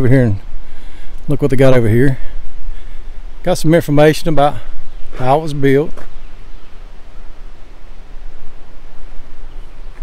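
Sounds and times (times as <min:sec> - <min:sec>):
wind blowing on microphone: 0:00.0 - 0:10.0.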